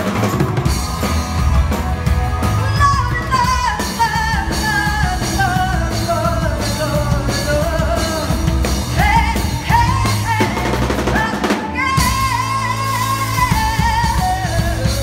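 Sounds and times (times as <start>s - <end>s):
live rock band playing: 0.0s - 15.0s
woman singing lead: 2.4s - 15.0s.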